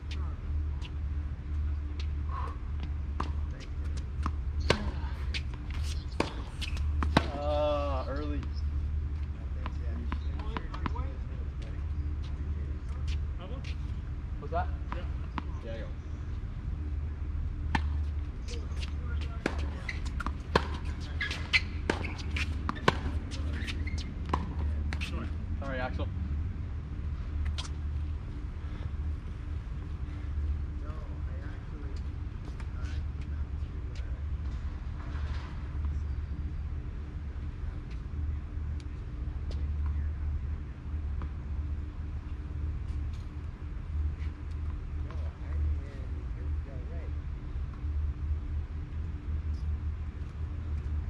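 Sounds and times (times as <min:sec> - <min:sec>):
steady low rumble: 0:00.0 - 0:51.0
tennis ball hits and bounces: 0:03.2 - 0:07.4, 0:10.0 - 0:11.0, 0:17.7 - 0:25.1.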